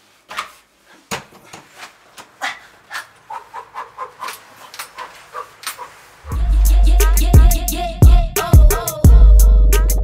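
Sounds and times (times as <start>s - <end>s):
man panting and whimpering: 2.3s - 6.0s.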